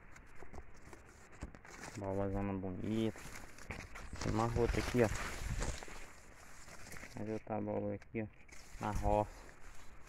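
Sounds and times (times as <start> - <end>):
footsteps on soil: 0.0 - 7.4
leaves and stalks rustling: 0.0 - 10.0.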